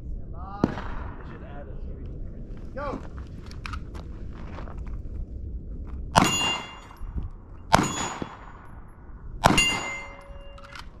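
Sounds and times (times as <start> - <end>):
gunshots: 0.6 - 1.6, 6.1 - 7.0, 7.7 - 8.7, 9.4 - 10.9
steel target ringing: 6.2 - 7.1, 7.7 - 8.8, 9.4 - 10.6.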